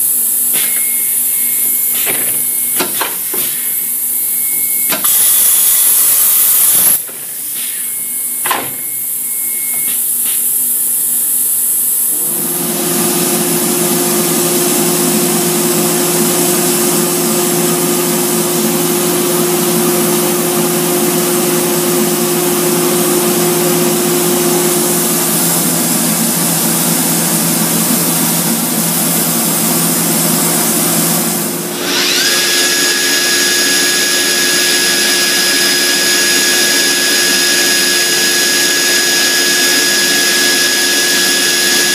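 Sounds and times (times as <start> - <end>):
high whine: 0.0 - 41.9
router machine running: 7.9 - 41.9.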